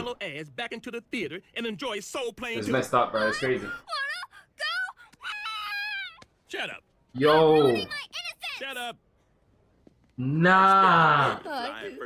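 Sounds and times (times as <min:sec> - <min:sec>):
girl wailing: 0:03.2 - 0:06.2.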